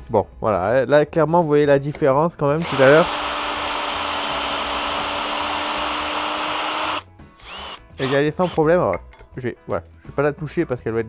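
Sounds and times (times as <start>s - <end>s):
cordless drill driving a screw: 2.6s - 8.6s.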